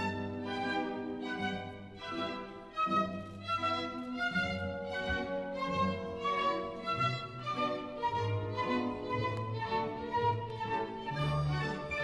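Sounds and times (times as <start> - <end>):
violin melody: 0.0 - 12.0.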